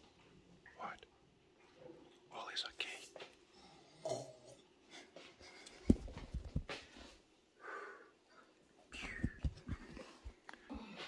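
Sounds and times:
soft footsteps: 0:05.2 - 0:07.3, 0:09.0 - 0:11.0.

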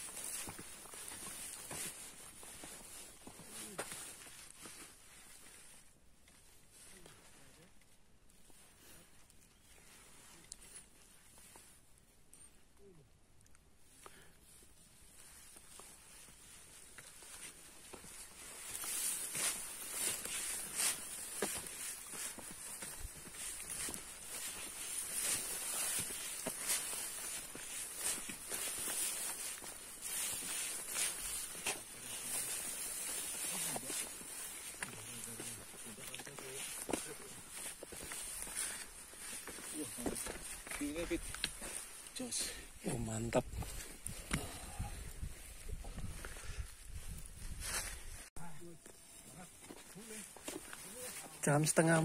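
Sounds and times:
footsteps on dirt trail: 0:00.0 - 0:07.2, 0:14.1 - 0:52.0.

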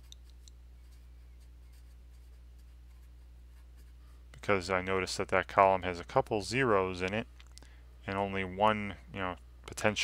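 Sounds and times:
marker writing on paper: 0:00.0 - 0:04.0
steady low hum: 0:00.0 - 0:10.0.

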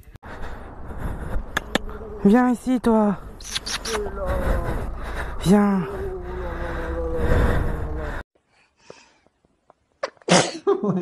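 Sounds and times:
road rumble with engine hum: 0:00.2 - 0:08.3.

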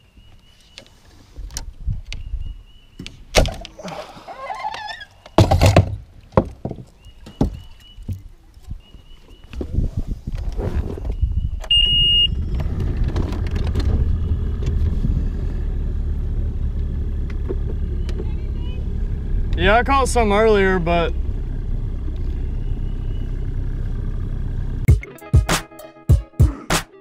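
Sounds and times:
knocks and clatter: 0:05.4 - 0:08.3, 0:12.6 - 0:14.8
high beep: 0:11.7 - 0:12.4
outboard engine idling: 0:12.1 - 0:24.9.

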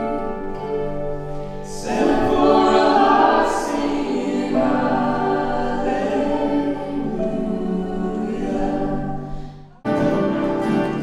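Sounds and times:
choir singing a hymn: 0:01.6 - 0:11.0.

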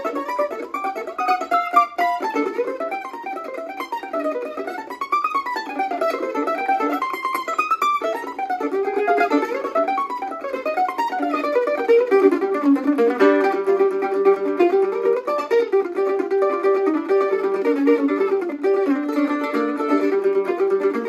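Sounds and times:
mandolin playing fast runs: 0:00.0 - 0:21.0.

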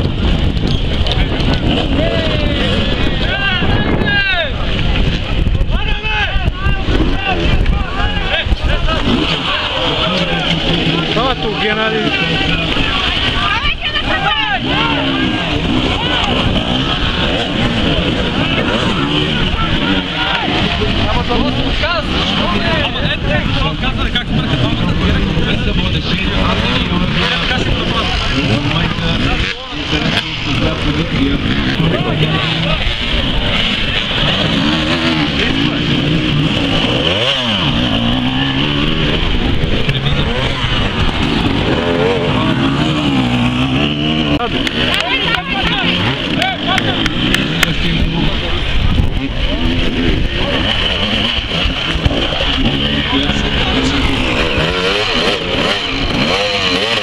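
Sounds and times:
dirt bike engines revving: 0:00.0 - 0:57.0.

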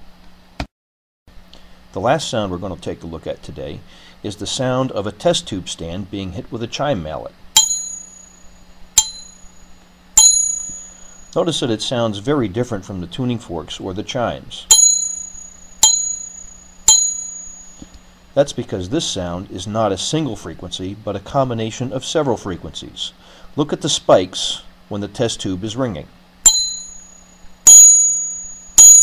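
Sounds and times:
mallet striking ringing metal stand: 0:07.6 - 0:09.6, 0:10.2 - 0:11.3, 0:14.7 - 0:17.9, 0:26.4 - 0:29.0.

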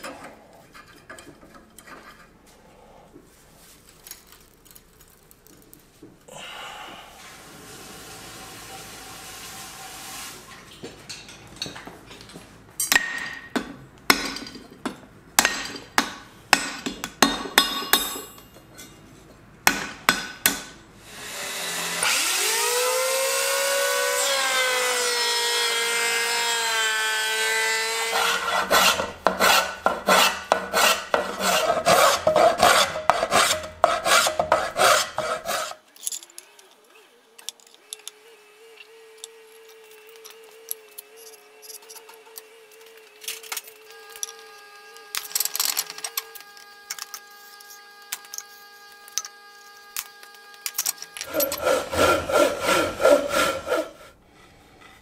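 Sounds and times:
hammer on steel anvil: 0:15.4 - 0:18.4
power tool motor running: 0:21.0 - 0:35.8, 0:37.8 - 0:54.1
rasp on wood: 0:27.8 - 0:35.8, 0:51.2 - 0:55.0.

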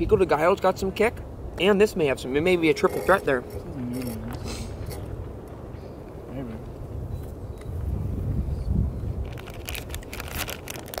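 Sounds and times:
wind buffeting microphone: 0:00.0 - 0:11.0
crackles and rustles: 0:09.0 - 0:11.0.

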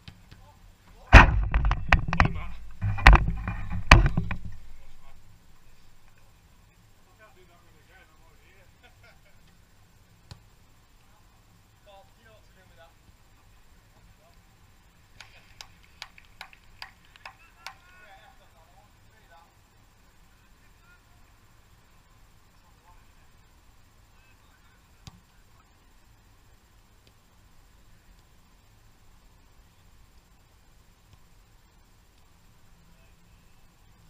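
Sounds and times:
faint distant voices: 0:00.1 - 0:30.4
sharp clicks or knocks: 0:01.1 - 0:04.8
ball banging on metal frame: 0:01.1 - 0:05.2
metal frame rattling: 0:01.1 - 0:05.2.

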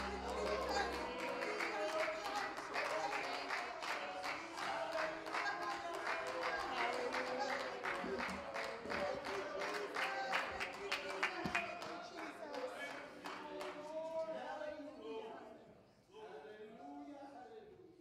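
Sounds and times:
church band with drums and keyboard: 0:00.0 - 0:03.0
people singing: 0:00.0 - 0:09.5
people clapping on the beat: 0:00.0 - 0:14.1.

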